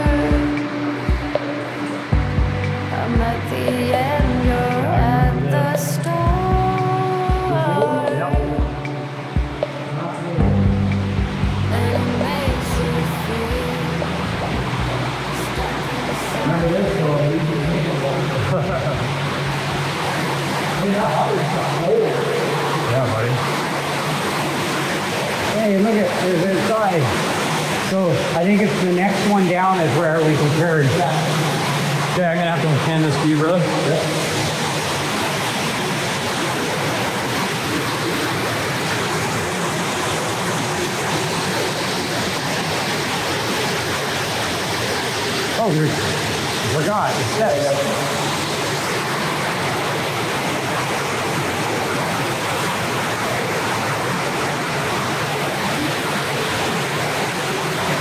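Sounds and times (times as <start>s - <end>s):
water rushing through drain tunnel: 8.4s - 58.0s.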